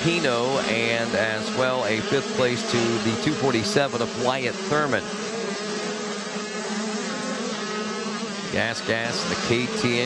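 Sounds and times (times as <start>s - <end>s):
motocross bike engines racing: 0.0s - 10.0s.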